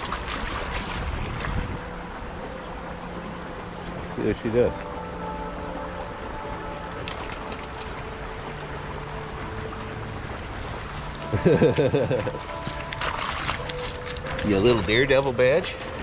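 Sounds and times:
creek water rushing: 0:00.0 - 0:16.0.

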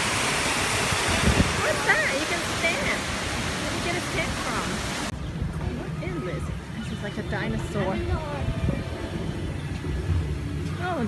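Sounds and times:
waterfall rushing: 0:00.0 - 0:05.1
voices: 0:01.3 - 0:11.0.

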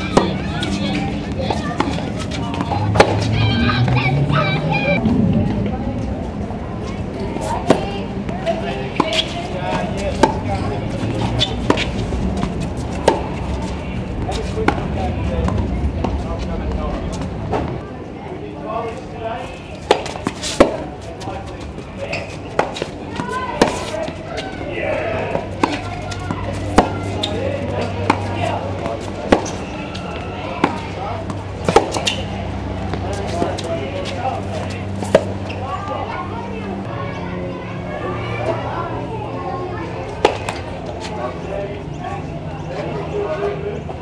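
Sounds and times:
tennis balls bouncing on hard court: 0:00.0 - 0:04.0, 0:07.4 - 0:16.2, 0:19.8 - 0:24.6, 0:25.2 - 0:36.0, 0:40.2 - 0:40.7
tennis balls struck by racquets: 0:00.0 - 0:04.0, 0:07.4 - 0:16.2, 0:19.7 - 0:36.0, 0:40.1 - 0:40.9.

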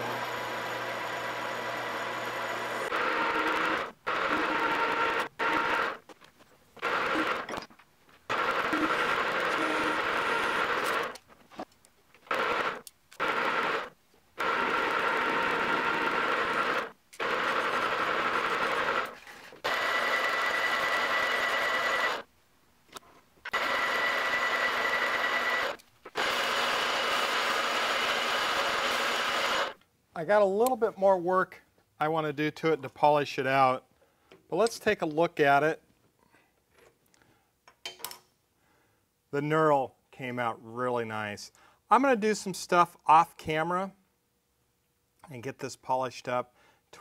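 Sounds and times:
metal lathe whining: 0:00.0 - 0:06.0, 0:08.3 - 0:11.2, 0:12.3 - 0:22.2, 0:23.5 - 0:29.8.

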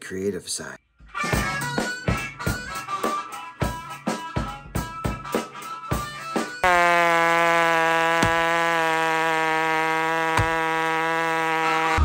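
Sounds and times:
chainsaw cutting log: 0:06.6 - 0:12.0.

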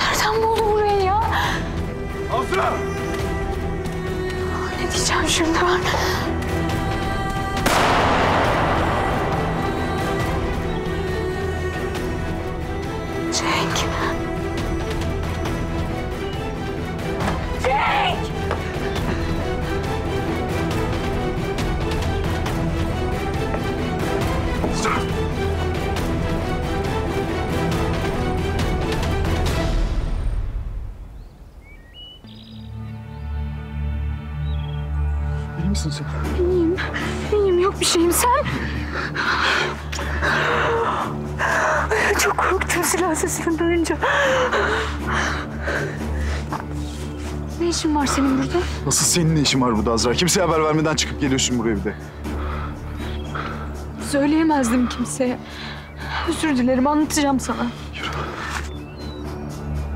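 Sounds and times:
tense music score: 0:00.0 - 0:59.9
loud gunshot echoing: 0:07.6 - 0:11.0
bird chirps: 0:31.1 - 0:35.6, 0:58.6 - 0:59.9.

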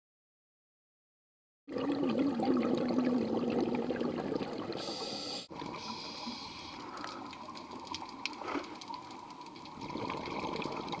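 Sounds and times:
water bubbling underwater: 0:01.7 - 0:11.0
small crackles: 0:05.5 - 0:11.0.

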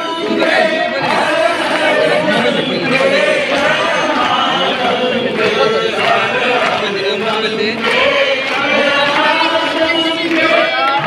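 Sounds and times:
large crowd: 0:00.0 - 0:11.0
voices chanting together: 0:00.0 - 0:11.0.

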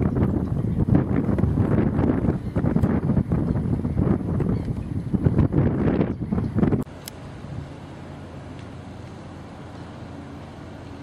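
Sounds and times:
wind buffeting microphone: 0:00.0 - 0:07.7.

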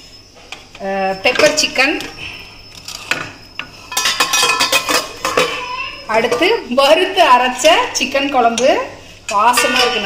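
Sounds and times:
metal cookware clinking: 0:03.9 - 0:07.0, 0:08.0 - 0:10.0.

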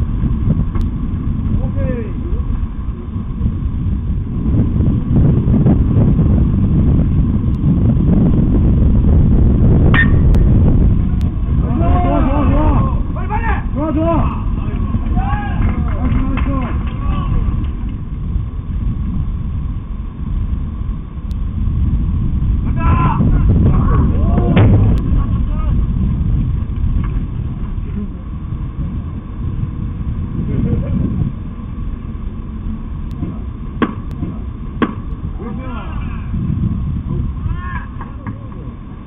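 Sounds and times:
loud low rumble: 0:00.0 - 0:39.0
sharp knocks: 0:33.2 - 0:35.1.

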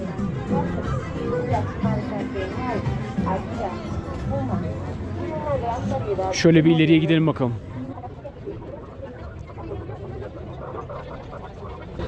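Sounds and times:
faint chatter of passers-by: 0:00.0 - 0:12.0
low rumble of street noise: 0:00.0 - 0:12.0.

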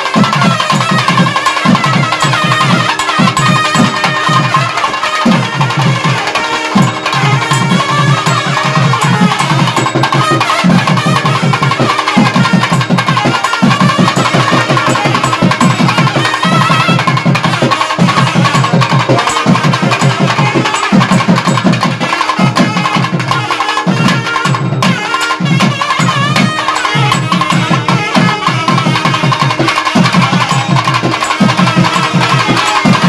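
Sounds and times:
fast dense drumming: 0:00.0 - 0:33.0
wavering reed melody: 0:00.0 - 0:33.0.

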